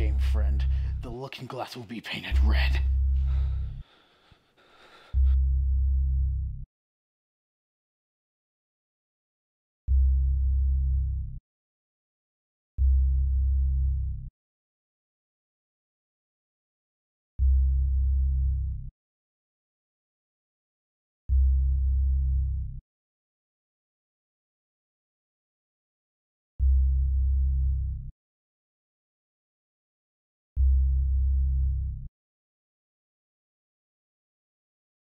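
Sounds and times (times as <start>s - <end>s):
deep synthesized bass tones: 0.0s - 1.2s, 2.3s - 3.8s, 5.2s - 6.7s, 9.9s - 11.4s, 12.8s - 14.3s, 17.4s - 18.9s, 21.3s - 22.8s, 26.6s - 28.1s, 30.6s - 32.0s.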